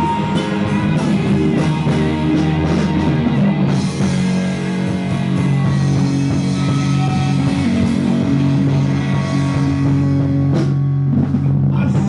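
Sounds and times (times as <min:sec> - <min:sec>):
drum kit: 0:00.0 - 0:12.0
electric guitars holding chords: 0:00.0 - 0:12.0.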